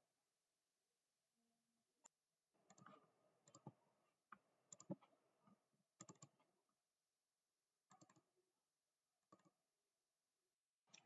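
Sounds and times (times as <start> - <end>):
faint mouse clicks: 2.0 - 5.2, 6.0 - 6.5, 7.9 - 8.3, 9.3 - 9.6.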